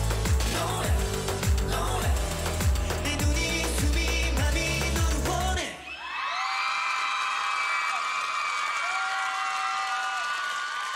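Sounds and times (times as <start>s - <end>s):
audience cheering and screaming: 5.7s - 10.9s.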